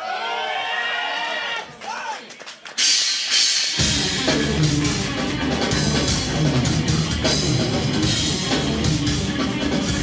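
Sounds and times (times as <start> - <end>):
metal band playing loud: 2.8 - 10.0.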